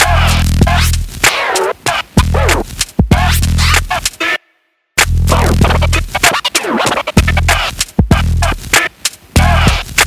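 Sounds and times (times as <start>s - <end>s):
electronic beat with deep bass: 0.0s - 4.4s, 5.0s - 10.0s
record scratching: 0.0s - 4.4s, 5.0s - 10.0s.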